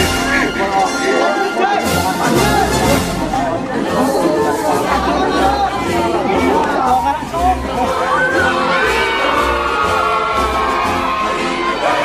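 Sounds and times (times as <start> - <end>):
music playing: 0.0 - 12.0
people talking and calling out: 0.0 - 12.0.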